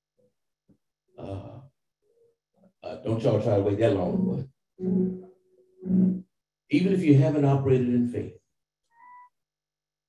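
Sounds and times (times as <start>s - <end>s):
man sighing: 1.2s - 1.7s.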